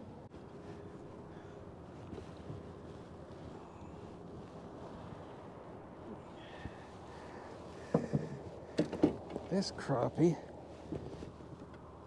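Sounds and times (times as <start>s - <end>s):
faint steady hum: 0.0s - 12.0s
water around boat: 0.0s - 12.0s.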